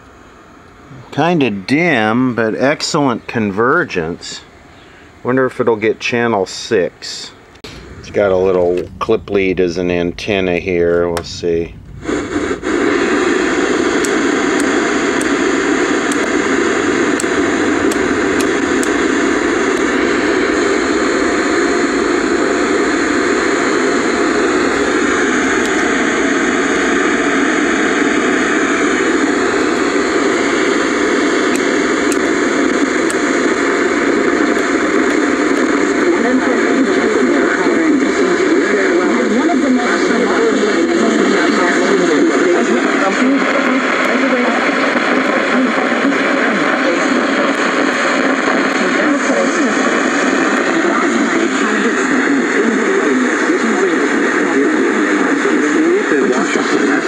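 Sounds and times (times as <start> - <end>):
tv static hiss: 0.0 - 57.0.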